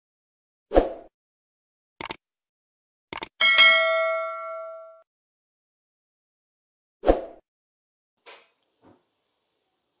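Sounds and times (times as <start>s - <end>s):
mouse clicks: 2.0s - 2.2s, 3.1s - 3.3s
bright bell ding: 3.4s - 5.0s.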